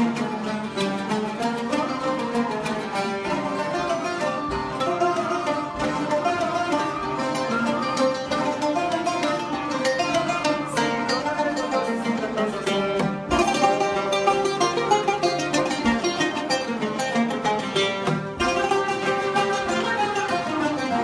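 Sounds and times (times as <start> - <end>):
plucked oud melody: 0.0 - 21.0.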